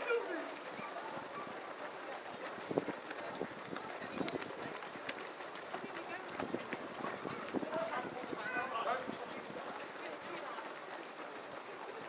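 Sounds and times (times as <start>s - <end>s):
runners' footsteps on wet road: 0.0s - 12.0s.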